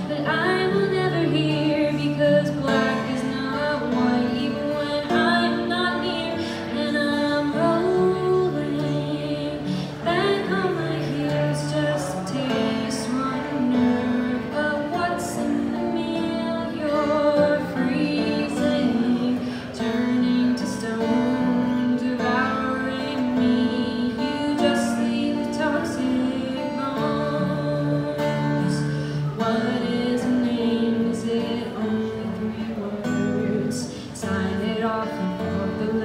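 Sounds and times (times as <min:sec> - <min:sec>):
acoustic guitar: 0:00.0 - 0:36.0
woman singing: 0:00.0 - 0:36.0.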